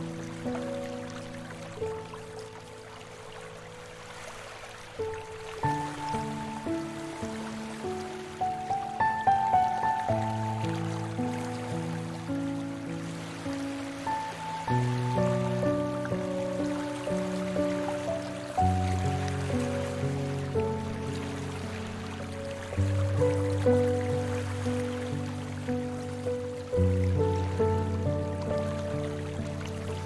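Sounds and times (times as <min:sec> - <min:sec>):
slow calm piano music: 0:00.0 - 0:30.0.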